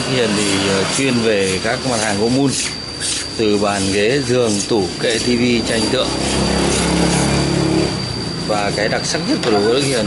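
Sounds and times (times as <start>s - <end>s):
motor running: 5.0s - 10.0s.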